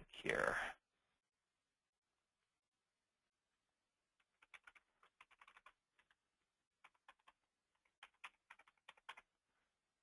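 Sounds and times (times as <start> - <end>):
computer keyboard typing: 4.2 - 6.2, 6.8 - 9.3.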